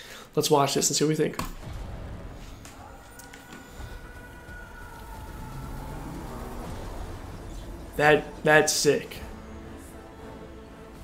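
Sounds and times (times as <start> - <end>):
low rumbling drone: 1.6 - 11.0.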